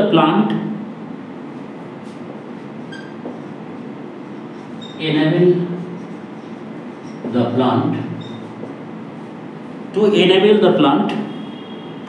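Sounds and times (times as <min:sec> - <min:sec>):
steady background noise: 0:00.0 - 0:12.0
marker squeaking on whiteboard: 0:02.6 - 0:03.7, 0:04.3 - 0:05.1, 0:05.7 - 0:07.4, 0:08.0 - 0:08.9.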